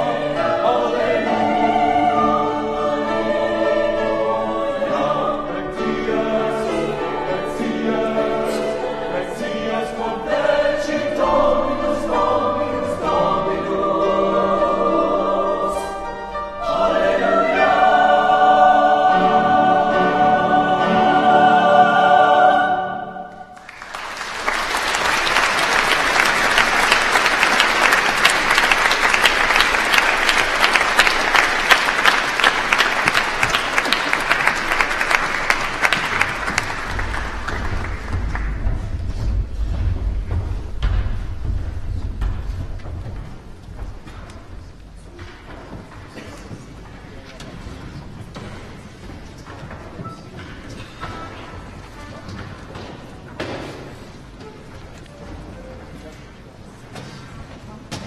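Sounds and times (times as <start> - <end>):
choir singing: 0.0 - 38.3
audience applause: 23.5 - 38.8.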